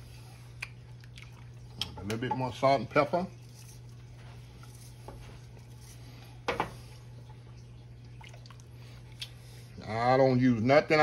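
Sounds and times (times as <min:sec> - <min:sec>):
steady low hum: 0:00.0 - 0:11.0
wooden spoon stirring pot: 0:01.8 - 0:07.0.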